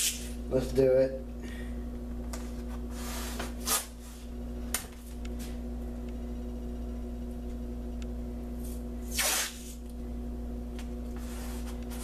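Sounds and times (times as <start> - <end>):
electrical hum: 0.0 - 12.0
masking tape pulled off roll: 9.1 - 9.8.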